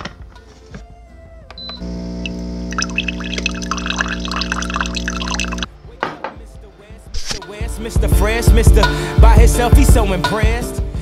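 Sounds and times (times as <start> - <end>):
coffee maker pump hum: 1.6 - 5.7
coffee pouring into mug: 2.2 - 5.7.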